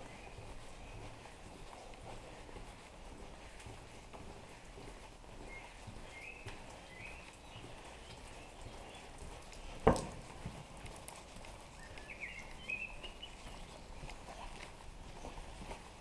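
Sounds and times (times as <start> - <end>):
birds chirping: 0.0 - 16.0
footsteps on stone paving: 0.0 - 16.0.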